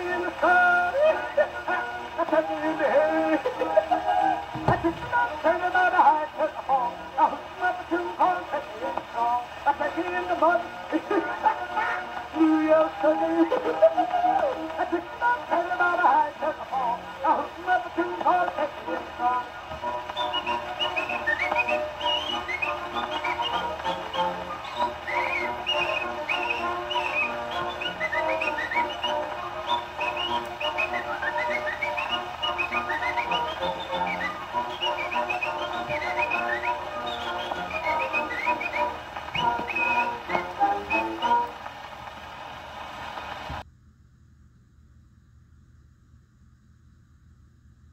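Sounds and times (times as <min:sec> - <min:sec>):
chirpy whistling: 0:19.9 - 0:41.5.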